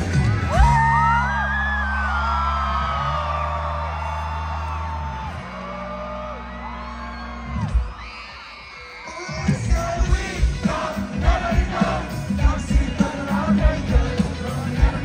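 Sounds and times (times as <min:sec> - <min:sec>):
rock band holding low chords: 0:00.0 - 0:08.0, 0:09.2 - 0:15.0
crowd whooping and yelling: 0:00.0 - 0:15.0.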